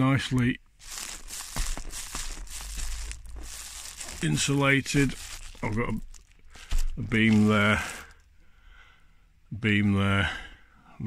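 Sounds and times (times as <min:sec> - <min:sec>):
rustling and crinkling handling noise: 0:00.0 - 0:08.5
low rumble: 0:00.8 - 0:07.5.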